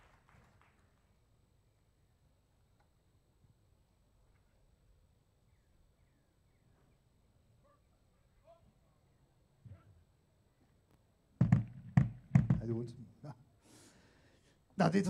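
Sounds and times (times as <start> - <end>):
thump over microphone: 11.4 - 12.7
man's amplified voice: 12.5 - 13.3, 14.8 - 15.0.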